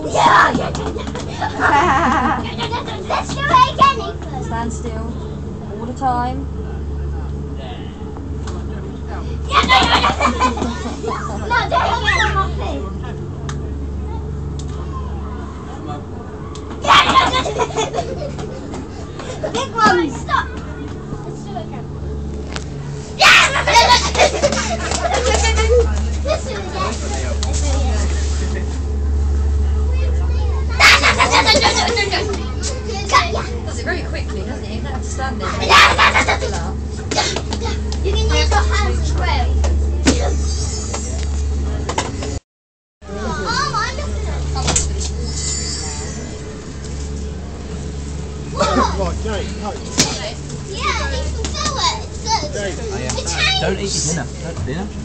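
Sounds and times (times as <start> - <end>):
steady low hum: 0.0 - 42.4, 43.0 - 55.0
children squealing and shouting: 11.0 - 12.6.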